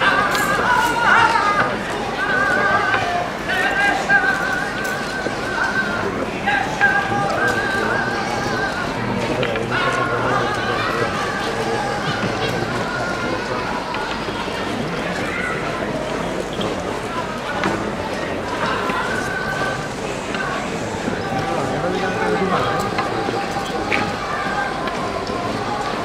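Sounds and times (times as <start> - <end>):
crowd murmur: 0.0 - 26.0.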